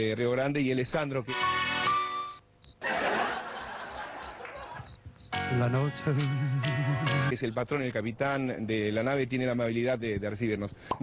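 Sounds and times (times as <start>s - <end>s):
high cricket chirps: 2.3s - 5.4s.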